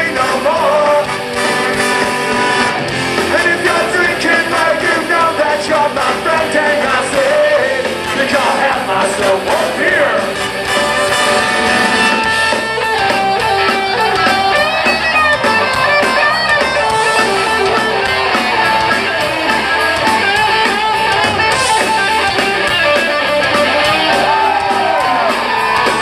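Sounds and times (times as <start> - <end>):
drum kit: 0.0 - 26.0
electric guitar: 0.0 - 26.0
trombone: 0.6 - 3.9, 10.0 - 12.6.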